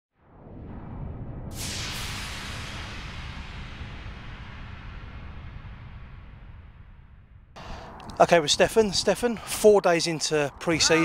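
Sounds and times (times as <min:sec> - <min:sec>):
whoosh with low rumble and hiss: 0:00.2 - 0:09.2.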